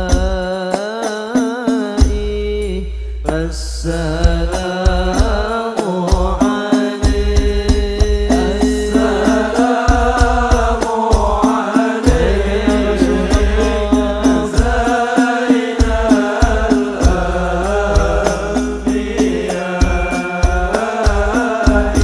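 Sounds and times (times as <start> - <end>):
hand percussion beat: 0.0 - 22.0
deep bass drum: 2.0 - 5.6, 7.0 - 11.4, 12.1 - 15.0, 15.8 - 22.0
men chanting: 3.3 - 22.0.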